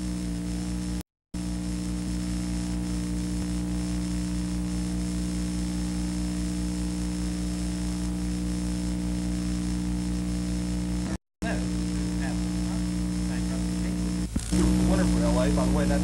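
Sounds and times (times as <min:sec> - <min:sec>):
faint high whine: 0:02.0 - 0:16.0.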